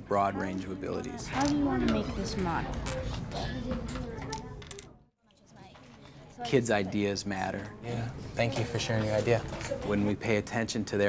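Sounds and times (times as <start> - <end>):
quiet children's voices: 0.1 - 10.4.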